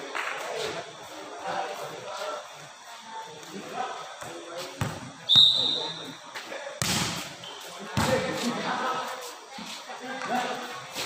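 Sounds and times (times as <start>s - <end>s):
referee whistle blast: 5.3s - 6.1s.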